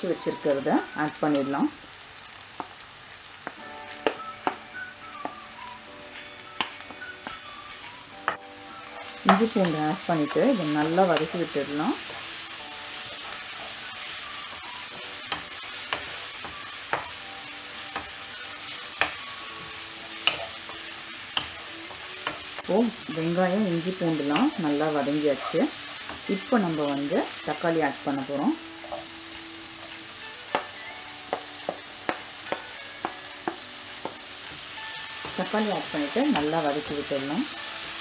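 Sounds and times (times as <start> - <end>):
onions sizzling in oil: 0.0 - 38.0.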